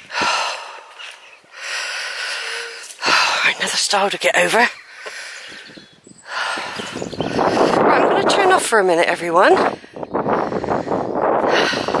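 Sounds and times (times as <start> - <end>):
woman breathing heavily: 0.0 - 4.0, 4.8 - 8.2, 9.6 - 12.0.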